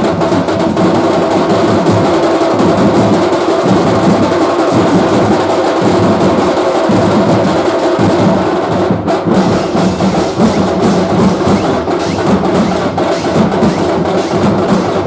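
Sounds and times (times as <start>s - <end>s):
steel drums beaten with sticks: 0.0s - 15.0s.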